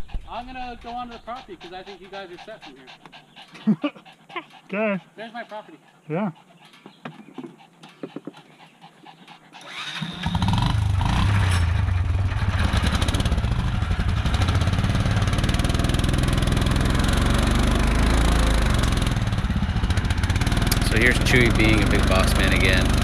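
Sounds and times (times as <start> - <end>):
vehicle engine running: 10.1 - 23.0.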